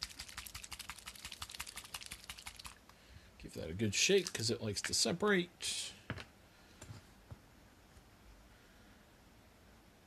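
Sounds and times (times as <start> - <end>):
paint pot rattling when shaken: 0.0 - 2.8, 4.2 - 4.4.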